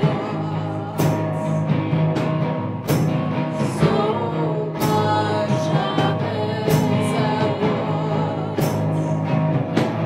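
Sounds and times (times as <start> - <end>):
drum kit: 0.0 - 10.0
electric and acoustic guitar chords: 0.0 - 10.0
rock band playing: 0.0 - 10.0.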